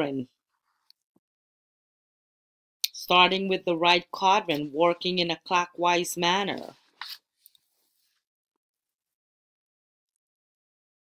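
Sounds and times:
woman speaking: 0.0 - 0.4, 2.9 - 6.8.

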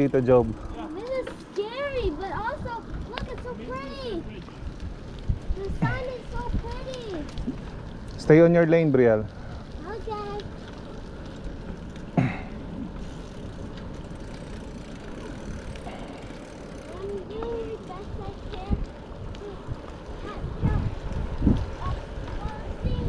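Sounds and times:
bicycle tyres rolling on pavement: 0.0 - 23.0
wind rushing over microphone: 1.8 - 8.2, 17.6 - 23.0.

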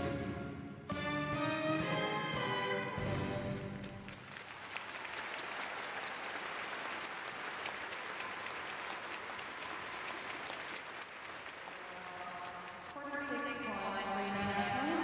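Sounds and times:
audience applauding: 2.7 - 14.1.

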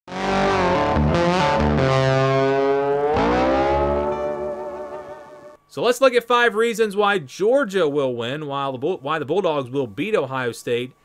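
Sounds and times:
distorted electric guitar chord: 0.1 - 5.6.

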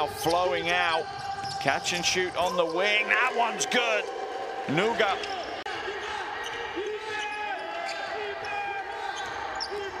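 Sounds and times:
sneakers squeaking: 0.1 - 3.0, 5.2 - 10.0.

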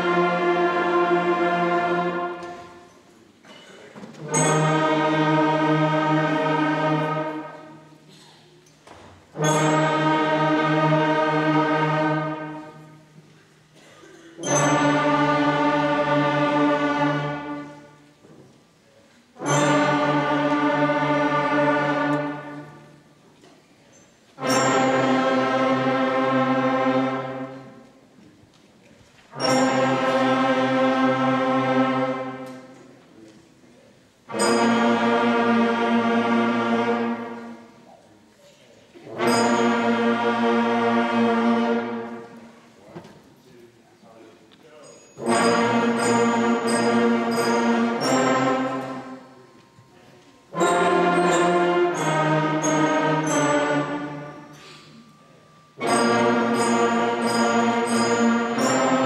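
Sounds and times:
concert band playing long tones: 0.0 - 8.4, 9.2 - 18.2, 19.0 - 23.2, 24.3 - 28.0, 29.3 - 32.8, 34.0 - 38.1, 39.0 - 43.1, 44.8 - 59.0.

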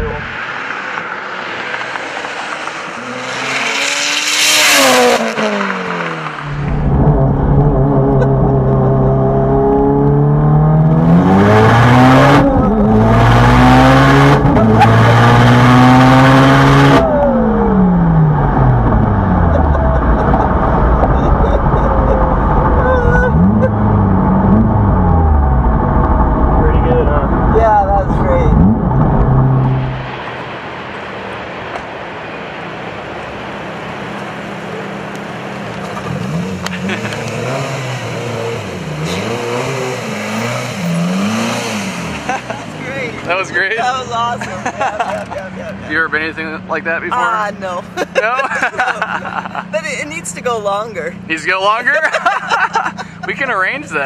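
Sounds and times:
turbocharged car engine at full throttle: 0.0 - 31.9, 33.3 - 43.8.

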